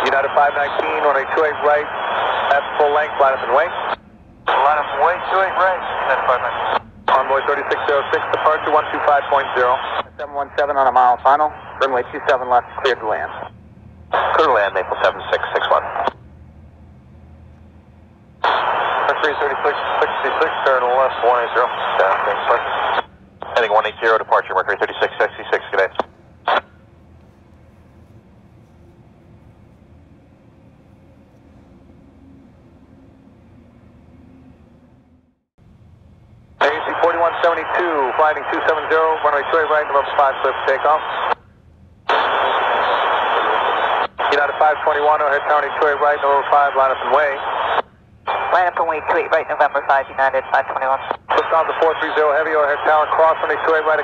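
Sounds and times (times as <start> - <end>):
radio voice: 0.0 - 13.5, 14.1 - 16.2, 18.4 - 26.7, 36.6 - 41.4, 42.1 - 54.0
radio hum and hiss: 0.0 - 16.8, 17.4 - 32.7, 36.6 - 54.0.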